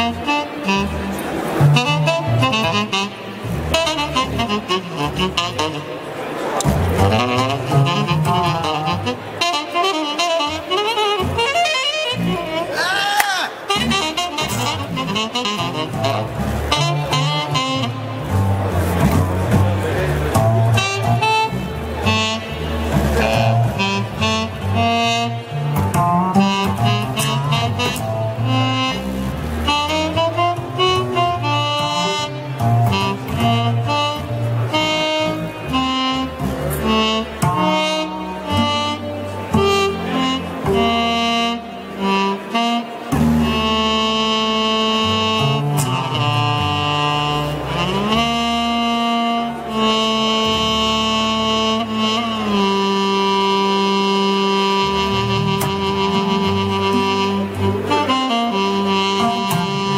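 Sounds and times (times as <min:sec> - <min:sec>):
sustained synth bass notes: 0:00.0 - 0:12.7, 0:13.8 - 0:59.9
synth keyboard melody notes: 0:00.0 - 0:12.8, 0:13.6 - 0:59.9.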